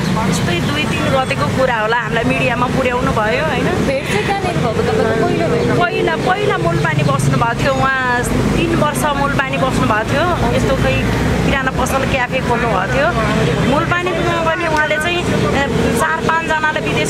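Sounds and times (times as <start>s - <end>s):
low rumble of street traffic: 0.0s - 17.0s
woman talking animatedly: 0.0s - 17.0s.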